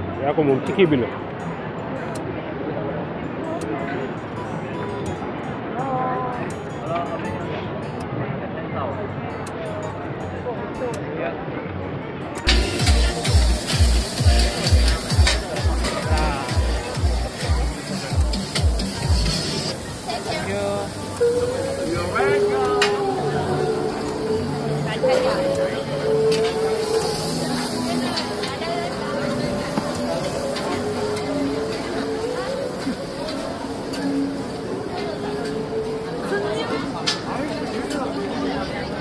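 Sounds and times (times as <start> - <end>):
street crowd chatter: 0.0 - 39.0
music with heavy bass drum: 12.5 - 19.7.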